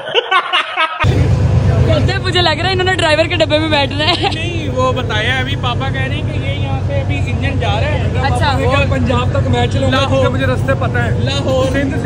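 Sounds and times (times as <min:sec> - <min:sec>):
diesel locomotive idling: 0:01.0 - 0:12.0
people talking: 0:01.1 - 0:12.0.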